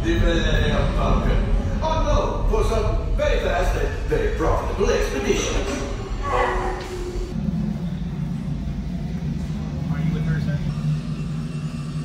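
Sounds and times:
spaceship engine hum and rumble: 0.0s - 12.0s.

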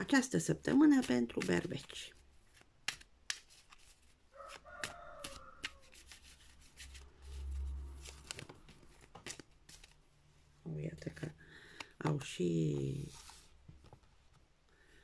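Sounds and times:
cards being shuffled: 0.7s - 10.0s.

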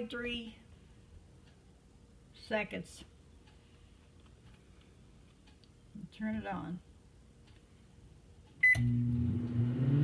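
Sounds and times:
microwave running hum: 8.1s - 10.0s
microwave click: 8.6s - 9.2s
microwave beep: 8.6s - 10.0s.

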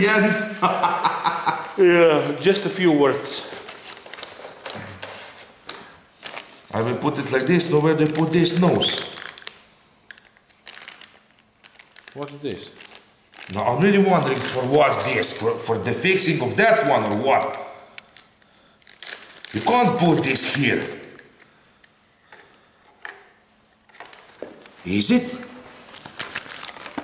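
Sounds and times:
plastic bag crinkling: 3.4s - 21.5s, 23.8s - 27.0s.

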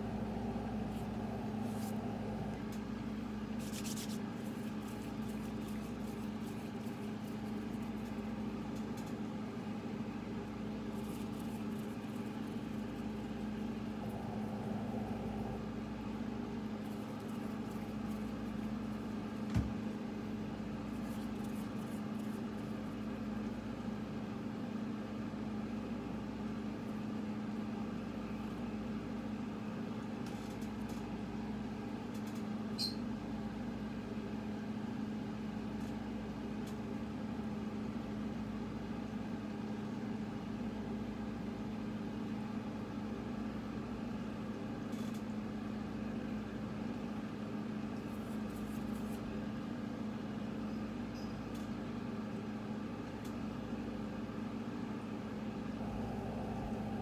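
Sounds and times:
low mechanical hum: 0.0s - 57.0s.

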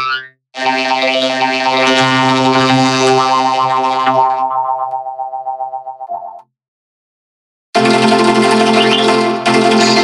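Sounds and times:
electronic pitched tone: 8.6s - 9.2s.

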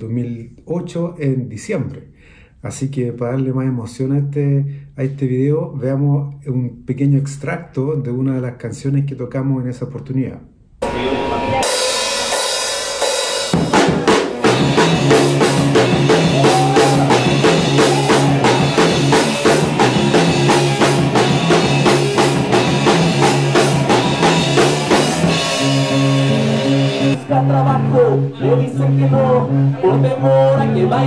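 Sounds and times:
cymbal wash: 10.8s - 13.6s
drum kit beat: 10.8s - 29.8s
electric bass notes: 10.8s - 31.0s
rock band playing live: 10.8s - 31.0s.

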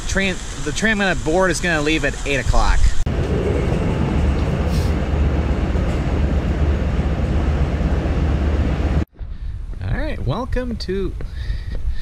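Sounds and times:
train running rumble: 3.1s - 9.1s.

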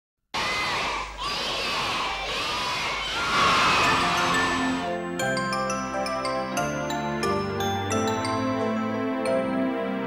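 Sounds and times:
children shouting and cheering: 0.4s - 4.9s.

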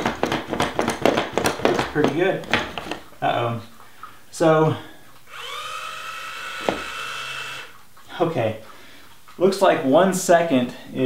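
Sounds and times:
small electric motor whining: 5.3s - 7.8s.

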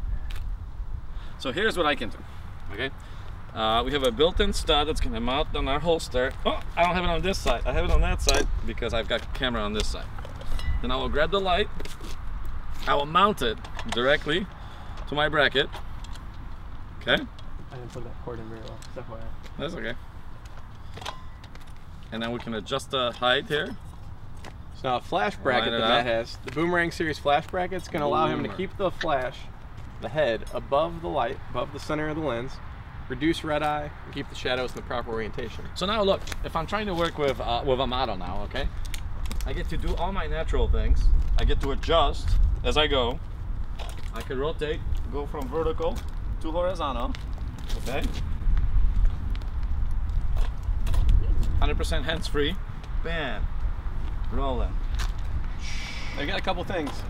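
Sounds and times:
wind rumbling on microphone: 0.0s - 21.0s, 30.9s - 57.0s.

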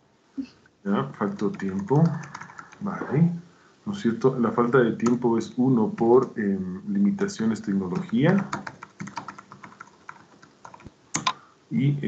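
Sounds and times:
computer keyboard typing: 1.1s - 2.9s, 5.0s - 5.2s, 5.8s - 6.4s, 7.0s - 11.4s.

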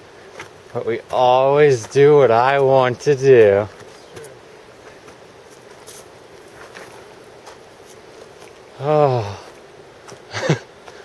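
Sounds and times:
footsteps on rocky dirt trail: 0.0s - 11.0s
steady outdoor hiss: 0.0s - 11.0s.

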